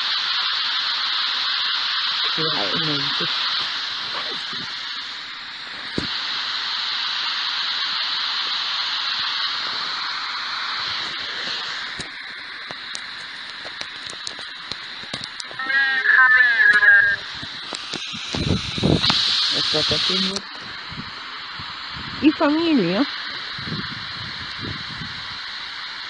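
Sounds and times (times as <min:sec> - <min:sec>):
static clicks: 0:00.0 - 0:06.3, 0:10.7 - 0:20.8
radio static hiss: 0:00.0 - 0:26.0
garbled voice-like warbling burst: 0:04.1 - 0:04.6, 0:15.6 - 0:17.3.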